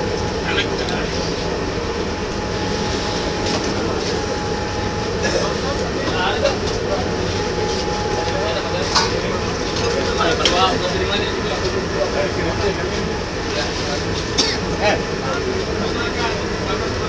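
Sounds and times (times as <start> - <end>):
ship machinery droning: 0.0 - 17.0.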